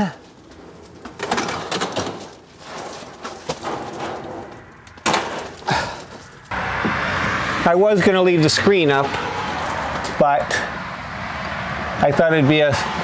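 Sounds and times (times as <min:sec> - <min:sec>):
wire mesh scraping and rattling: 0:00.2 - 0:06.5.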